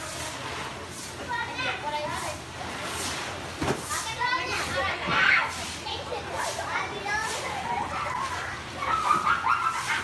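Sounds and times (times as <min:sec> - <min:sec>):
children chattering and calling: 0:01.1 - 0:02.8, 0:03.7 - 0:10.0.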